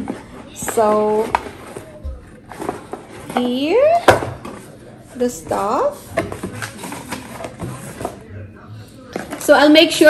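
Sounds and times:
cardboard and paper rustling: 0.0 - 4.8, 5.9 - 8.3.

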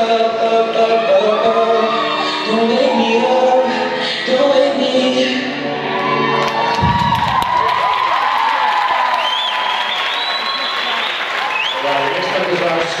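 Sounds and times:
shouts and whoops: 5.9 - 12.3
audience clapping: 6.4 - 13.0.

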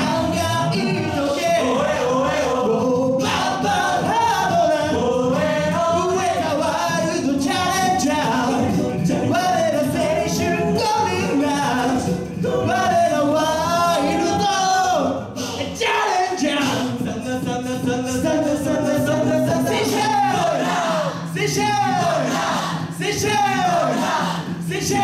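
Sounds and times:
male a cappella group singing: 0.0 - 25.0.

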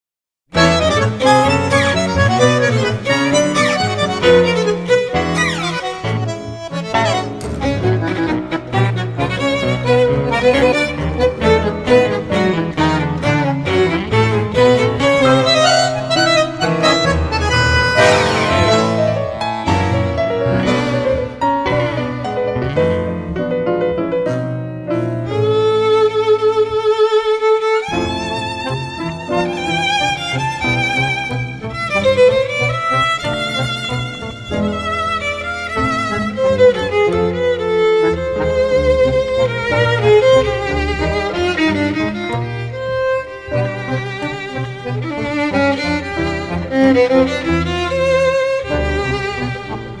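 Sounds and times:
tango ensemble with bandoneon: 0.5 - 50.0
violin long note with vibrato: 11.9 - 21.8.

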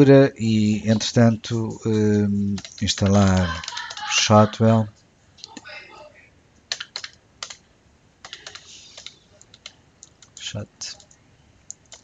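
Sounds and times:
computer keyboard typing: 2.5 - 4.2, 6.7 - 7.6, 8.2 - 12.0.

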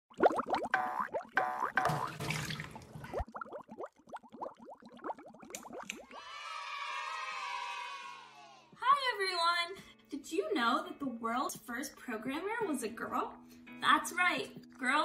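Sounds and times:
bubbly pitch-sliding bloops and pops: 0.1 - 6.0.

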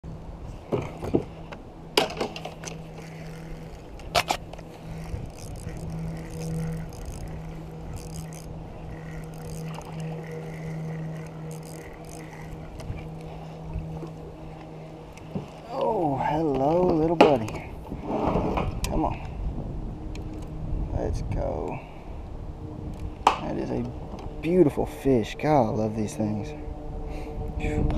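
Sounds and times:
low motor hum: 0.0 - 27.9
knocks and clicks of fishing gear: 0.7 - 15.6, 16.5 - 17.6.

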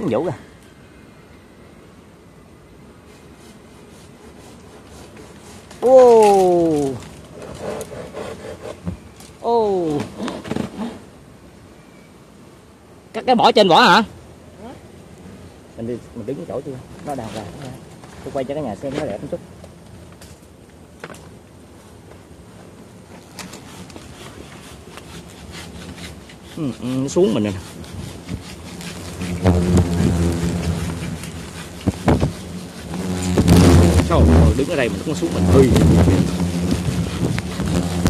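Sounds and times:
hand saw cutting branch: 3.1 - 8.8, 10.0 - 11.0, 23.3 - 38.0.

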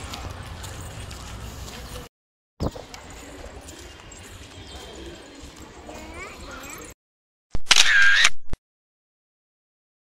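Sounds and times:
camera shutter click: 7.6 - 8.6.

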